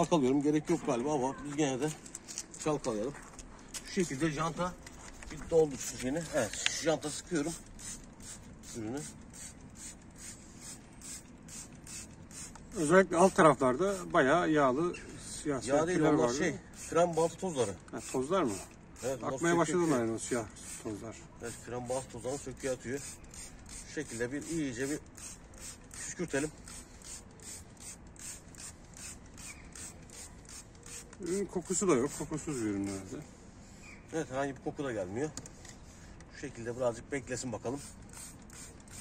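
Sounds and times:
spray bottle hissing spurts: 0:06.4 - 0:14.1, 0:16.6 - 0:34.0, 0:37.6 - 0:39.0.

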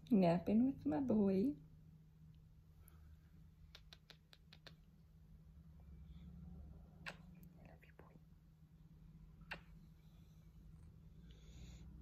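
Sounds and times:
faint kiss smacks: 0:03.6 - 0:05.0, 0:07.0 - 0:08.0, 0:09.4 - 0:10.0.

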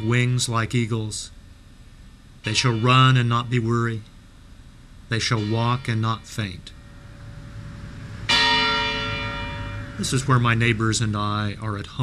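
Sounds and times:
church bell ringing: 0:02.5 - 0:03.5, 0:05.2 - 0:11.4.

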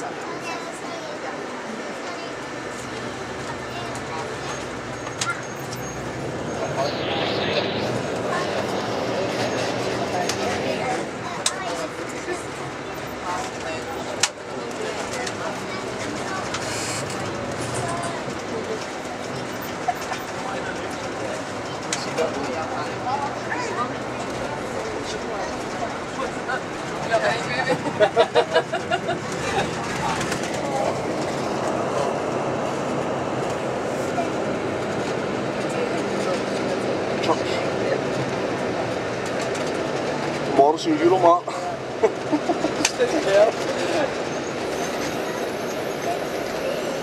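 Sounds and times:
bus running and road noise: 0:00.0 - 0:47.0
faint passenger talk: 0:00.0 - 0:47.0.

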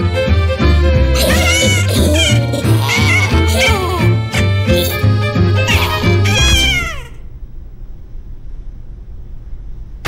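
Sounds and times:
cartoon music: 0:01.0 - 0:07.2
high cat-like vocal squeal: 0:05.6 - 0:07.2.

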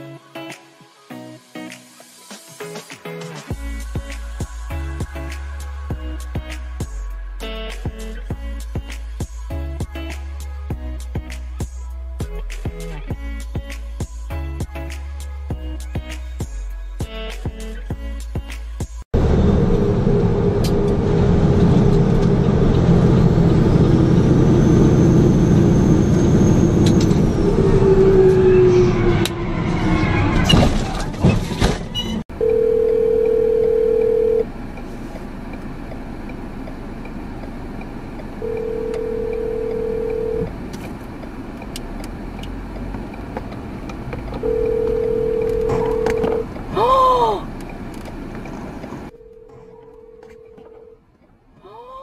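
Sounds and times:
truck cab rumble: 0:30.5 - 0:51.6
car cabin noise: 0:32.3 - 0:51.5
telephone ringback tone: 0:32.4 - 0:34.4, 0:38.4 - 0:40.5, 0:44.4 - 0:46.4, 0:49.1 - 0:51.0.

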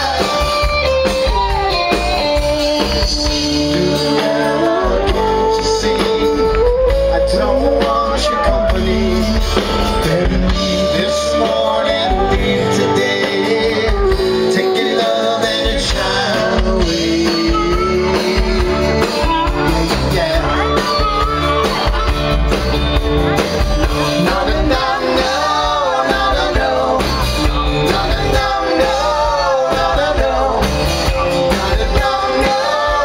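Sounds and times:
live rock band playing: 0:00.0 - 0:33.0.

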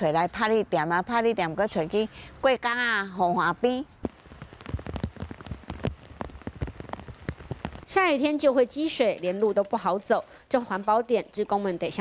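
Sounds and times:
rain falling: 0:03.6 - 0:12.0.

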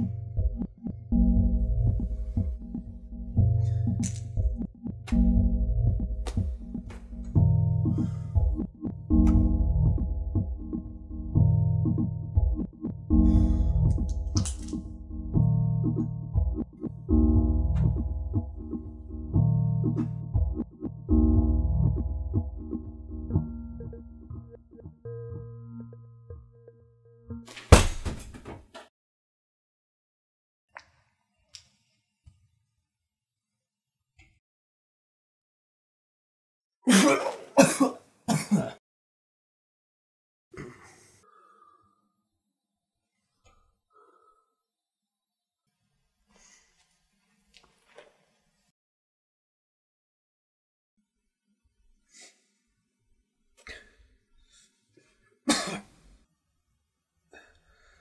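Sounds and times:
object crashing onto concrete floor: 0:27.6 - 0:28.6
man coughing: 0:36.9 - 0:38.8, 0:40.6 - 0:41.1, 0:55.5 - 0:56.0.

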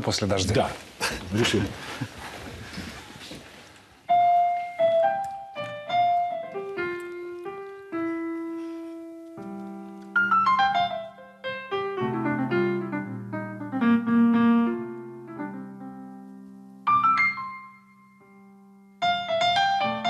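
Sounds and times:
slow folk melody on piano: 0:04.1 - 0:20.0.

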